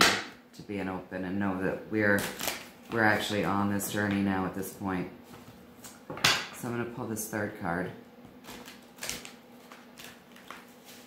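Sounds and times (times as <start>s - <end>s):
cards clicking and rustling: 8.4s - 11.0s.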